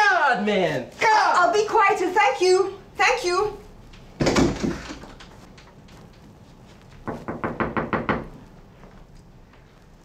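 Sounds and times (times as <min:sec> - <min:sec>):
rapid knocking on door: 0:07.0 - 0:08.4.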